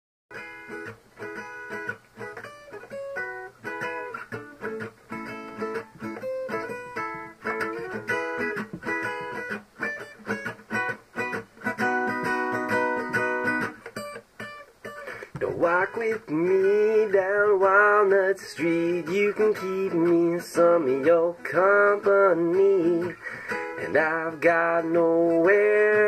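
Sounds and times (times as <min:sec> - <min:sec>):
acoustic guitar picking: 0:00.3 - 0:26.0
guitar chords ringing: 0:00.3 - 0:26.0.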